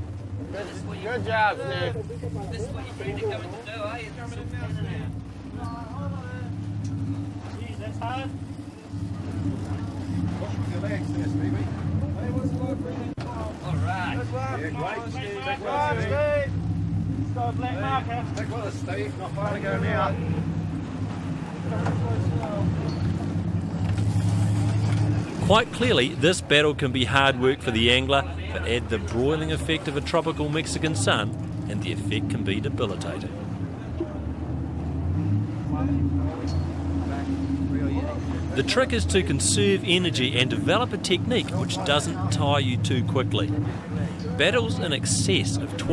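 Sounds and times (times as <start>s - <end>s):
boat engines droning: 0.0s - 45.9s
voices calling out: 0.0s - 45.9s.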